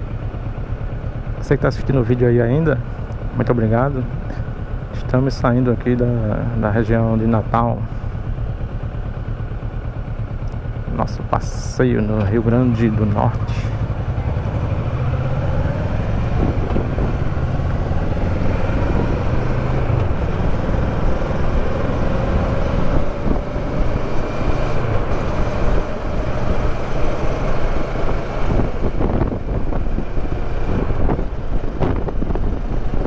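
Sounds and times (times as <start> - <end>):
motorcycle engine accelerating: 0.0 - 33.0
wind buffeting microphone: 13.2 - 21.9, 22.7 - 33.0.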